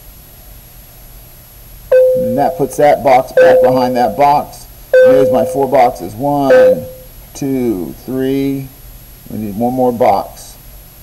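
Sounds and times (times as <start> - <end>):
background hiss: 1.3 - 10.6
loud steady beep tone: 1.9 - 2.8, 3.4 - 4.2, 5.0 - 5.9, 6.5 - 7.0.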